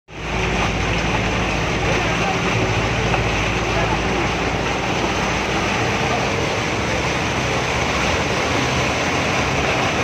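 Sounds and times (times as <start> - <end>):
bus engine running: 0.1 - 10.0
water rushing and churning: 0.1 - 10.0.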